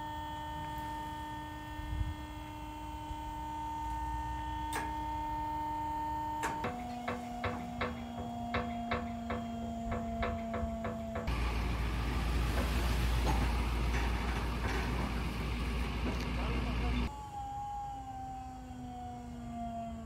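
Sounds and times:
hydraulic pump whining: 0.0 - 17.1.

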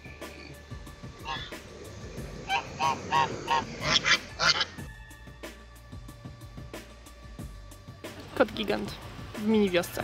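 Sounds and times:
goose honking: 1.2 - 1.6, 2.4 - 4.9.

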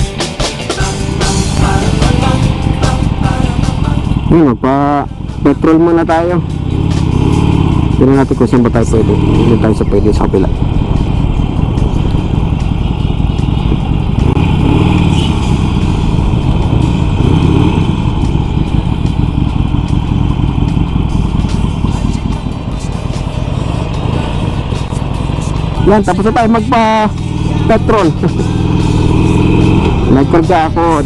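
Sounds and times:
motorcycle engine idling: 0.0 - 31.0.

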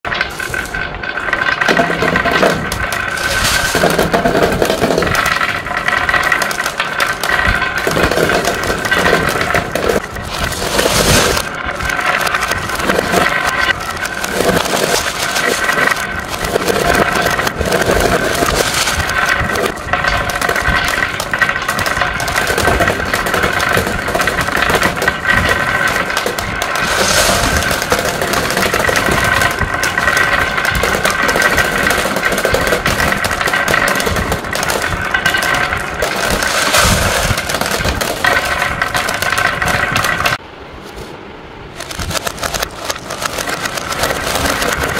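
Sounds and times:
marbles clicking together: 0.0 - 40.4, 41.8 - 44.9
marbles rolling on wood: 0.0 - 41.0, 41.7 - 44.9.

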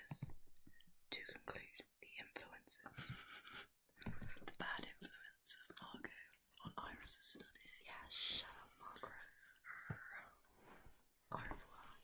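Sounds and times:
faint whispering: 0.0 - 12.0.

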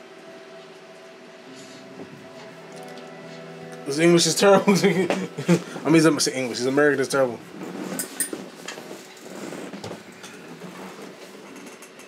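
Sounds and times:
room noise: 0.0 - 12.0.

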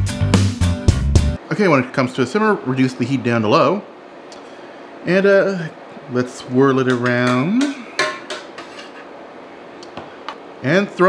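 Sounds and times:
metal spoon clinking on saucepan: 6.9 - 9.1.

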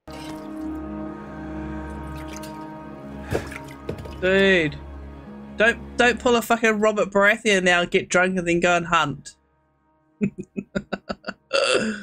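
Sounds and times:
low orchestral music: 0.0 - 12.0.

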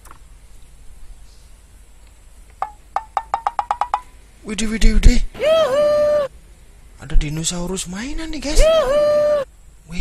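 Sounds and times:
wood block knocks: 2.6 - 4.1.

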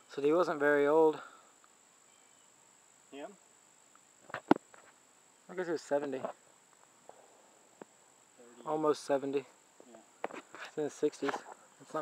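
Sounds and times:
insects trilling: 0.0 - 12.0.

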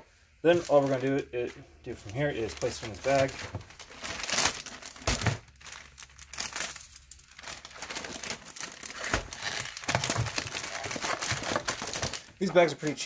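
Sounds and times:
plastic mailer bag crinkling: 0.4 - 13.0.

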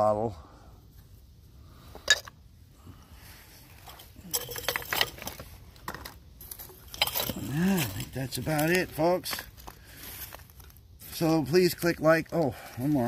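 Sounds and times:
glass bottles clinking: 4.2 - 6.0, 6.7 - 8.1.

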